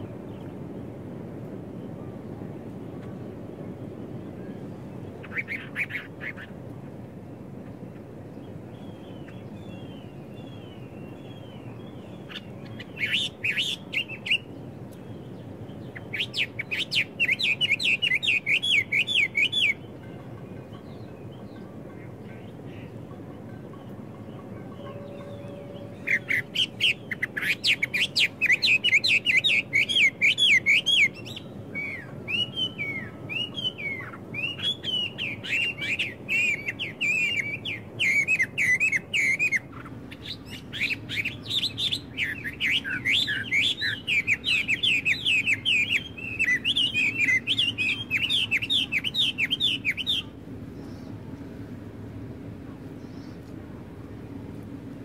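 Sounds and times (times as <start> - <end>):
songbirds singing: 0.0 - 54.8
faint background noise: 0.0 - 55.0.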